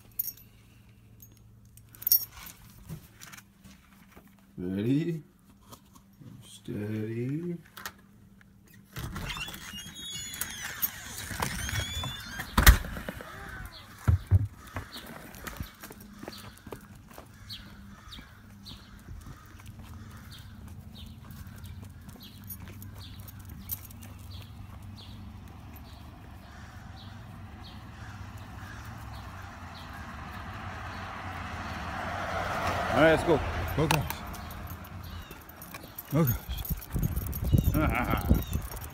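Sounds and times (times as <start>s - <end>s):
door squeaking: 8.7s - 14.5s
dog footsteps scuffing and ticking: 13.0s - 30.6s, 33.5s - 38.9s.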